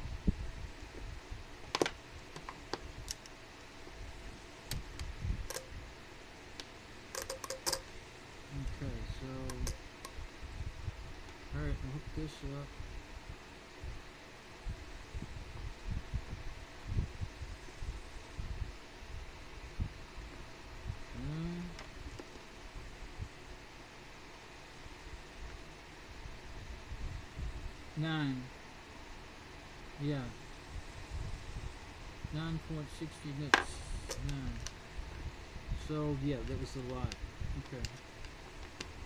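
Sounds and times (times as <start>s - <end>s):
faint steady hum: 0.0s - 39.0s
person muttering: 21.2s - 21.8s.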